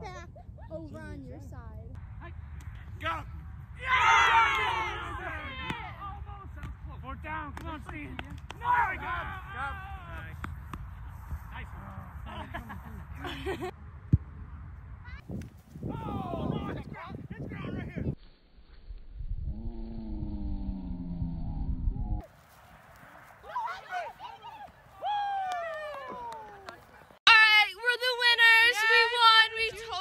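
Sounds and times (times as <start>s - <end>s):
girl's voice close to microphone: 0.0s - 1.9s
wind rumbling on microphone: 0.0s - 23.5s
people shouting and laughing: 3.8s - 6.4s, 8.6s - 10.3s, 15.9s - 16.7s, 23.4s - 27.1s.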